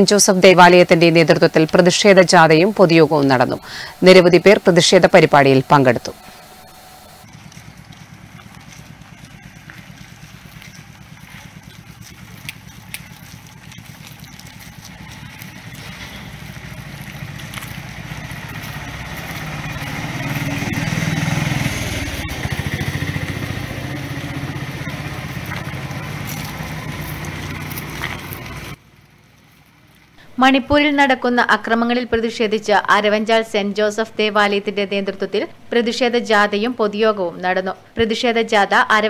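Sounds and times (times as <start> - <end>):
vehicle engine running: 0.0 - 30.2.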